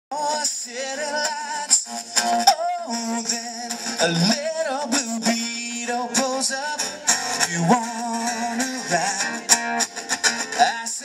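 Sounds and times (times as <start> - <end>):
acoustic guitars strummed: 0.1 - 11.0
man singing: 0.1 - 11.0.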